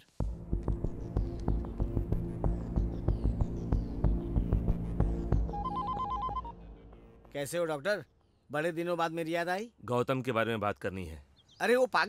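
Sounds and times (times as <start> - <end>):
mobile phone beeps: 5.5 - 6.5.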